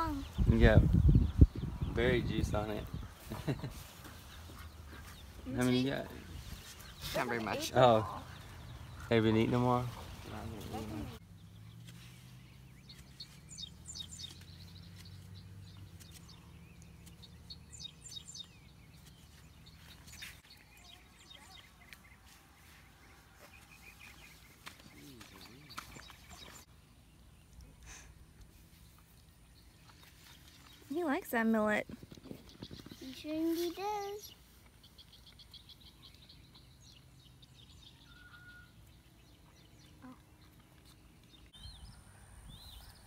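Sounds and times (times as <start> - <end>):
small birds chirping: 0.0 - 43.0.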